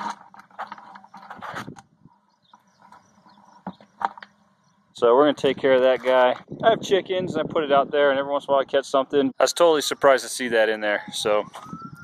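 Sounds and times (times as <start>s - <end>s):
mouse scratching on plastic: 0.0s - 1.8s.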